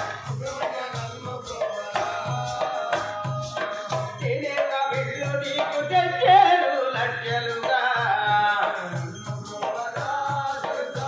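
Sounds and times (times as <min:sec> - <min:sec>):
person singing folk song: 0:00.0 - 0:11.0
steady drum beat: 0:00.0 - 0:11.0.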